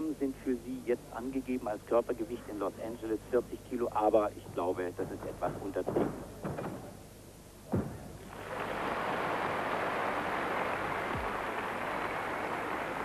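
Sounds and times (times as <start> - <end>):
crowd applauding: 8.3 - 13.0.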